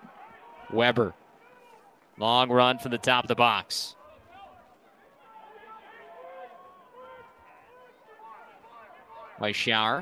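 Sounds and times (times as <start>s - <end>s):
open-air stadium ambience: 0.0s - 10.0s.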